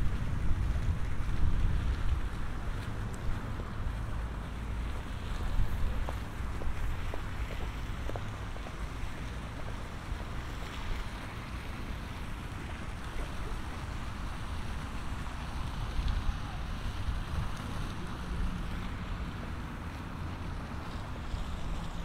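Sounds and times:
open-air background hiss: 0.0 - 22.0
wind buffeting microphone: 0.0 - 22.0.

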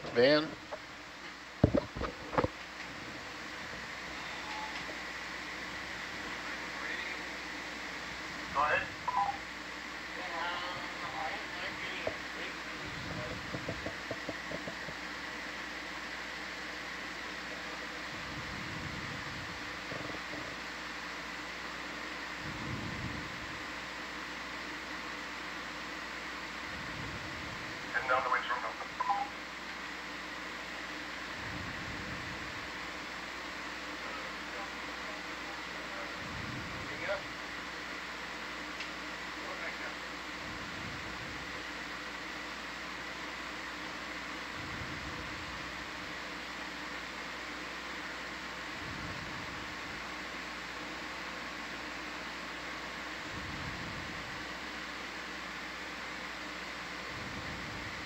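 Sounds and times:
electronic hum and hiss: 0.0 - 58.0
faint high whine: 0.0 - 58.0
voice chatter over radio: 8.5 - 9.4, 10.1 - 14.8, 27.9 - 29.4.

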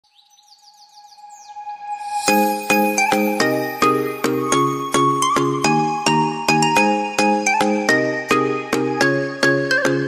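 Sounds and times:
bird-like rising chirps: 0.1 - 5.8.

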